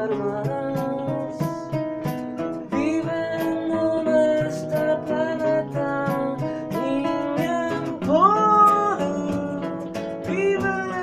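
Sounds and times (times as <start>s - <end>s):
classical guitar accompaniment: 0.0s - 11.0s.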